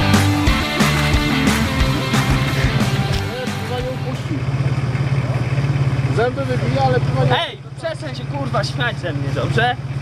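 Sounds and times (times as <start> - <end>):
background music: 0.0 - 4.3
engine idling: 0.0 - 10.0.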